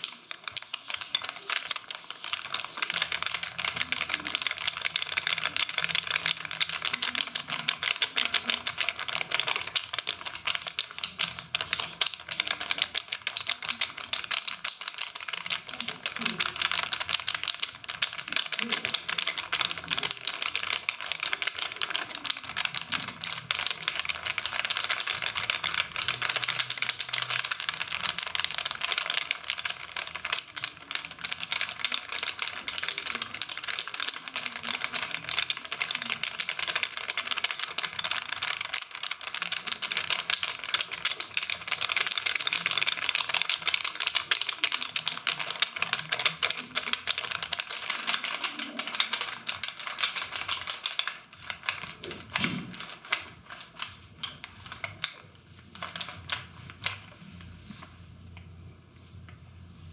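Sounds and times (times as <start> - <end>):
bamboo sticks clicking and tapping: 0.0 - 58.5.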